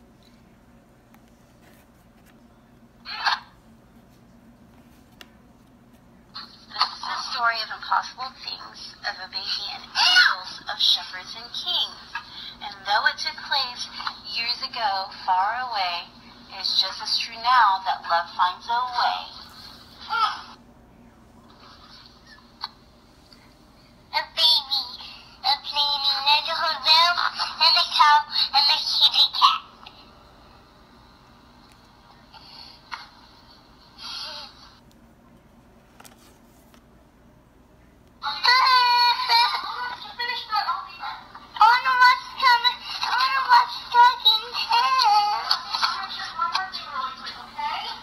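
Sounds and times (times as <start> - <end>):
toddler voice through tinny speaker: 24.1 - 29.7, 38.2 - 48.0.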